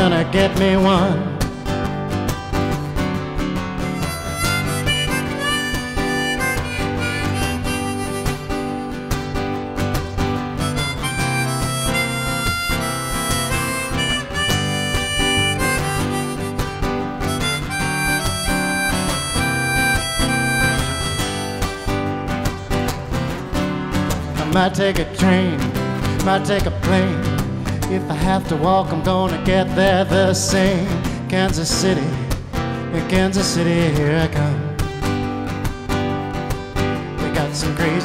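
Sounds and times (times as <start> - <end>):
strummed acoustic guitar: 0.0 - 38.0
harmonica bending notes: 3.8 - 23.4.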